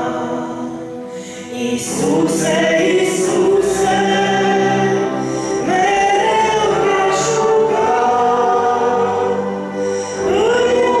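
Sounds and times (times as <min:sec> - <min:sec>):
woman singing into a microphone: 0:00.0 - 0:09.3, 0:10.0 - 0:11.0
electronic keyboard accompaniment: 0:00.0 - 0:11.0.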